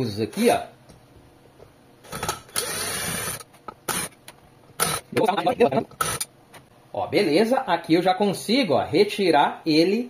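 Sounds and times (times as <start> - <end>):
cordless drill motor: 2.1 - 4.1, 4.8 - 5.0.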